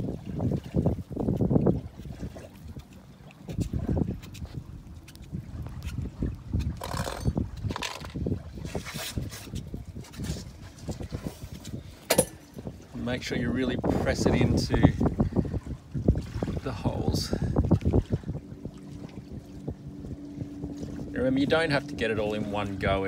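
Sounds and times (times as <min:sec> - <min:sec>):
wind rumbling on microphone: 0:00.0 - 0:23.0.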